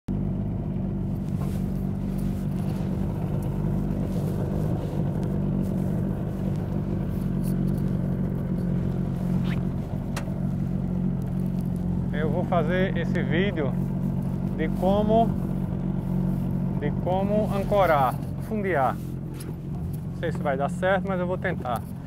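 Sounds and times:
outboard motor running: 0.1s - 22.0s.

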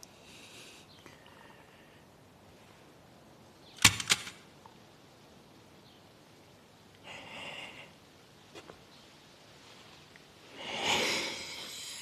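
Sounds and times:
metal pistol clattering on ground: 3.8s - 4.4s.

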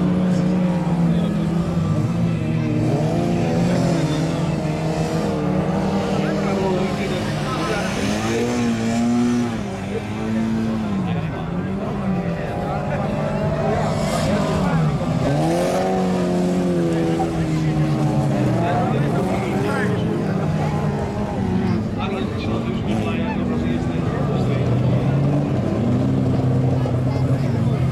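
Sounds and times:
race car engines revving: 0.0s - 27.9s.

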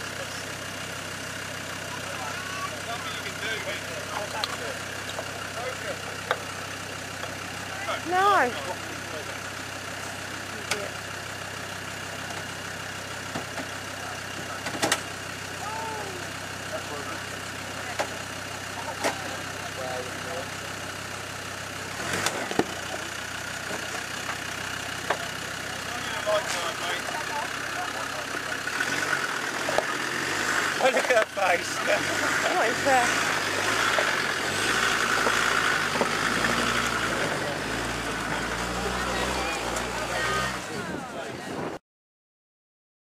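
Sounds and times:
diesel engine idling: 0.0s - 41.6s.

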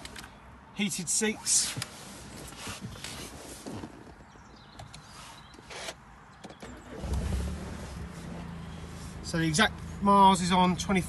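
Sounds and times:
car engine starting and idling: 5.7s - 11.0s.

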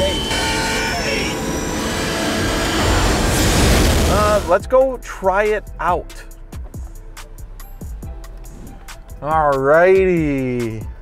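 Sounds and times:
steady tones: 0.0s - 4.8s.

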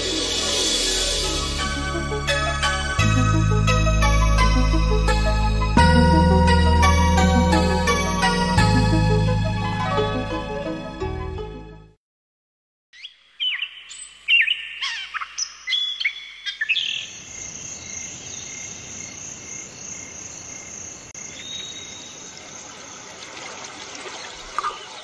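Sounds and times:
birds chirping and calling: 13.0s - 17.2s
insect drone: 17.0s - 24.9s.

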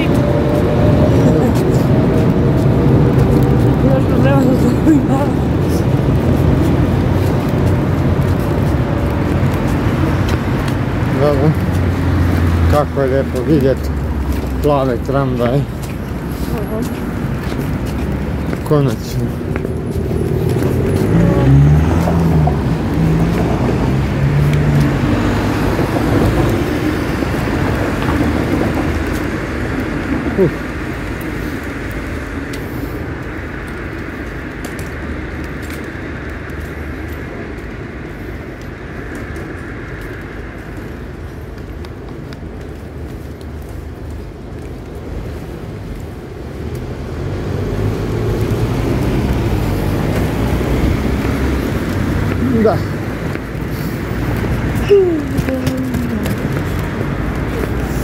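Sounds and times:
traffic rumble: 0.0s - 58.0s.

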